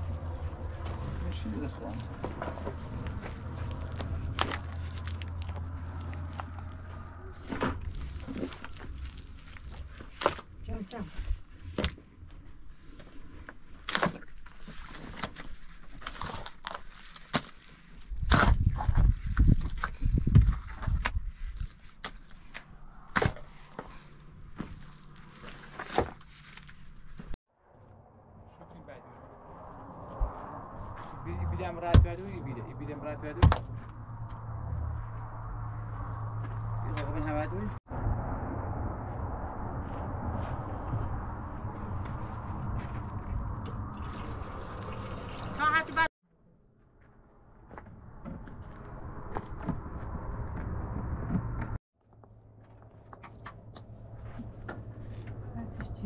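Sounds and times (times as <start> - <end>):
stones and earth being worked: 0.0 - 27.4.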